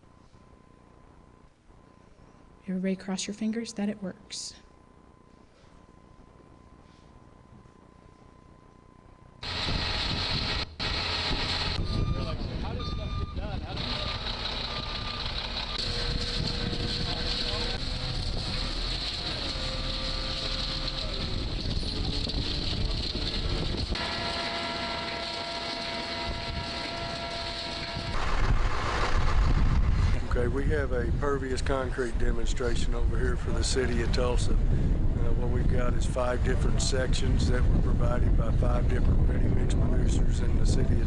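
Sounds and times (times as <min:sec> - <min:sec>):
machinery tones: 0:00.0 - 0:31.0
concrete mixer truck running: 0:09.4 - 0:31.2
crew voices: 0:11.7 - 0:28.2.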